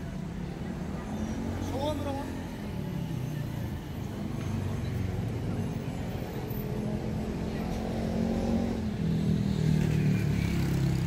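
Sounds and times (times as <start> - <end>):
rumble of passing cars: 0.0 - 11.0.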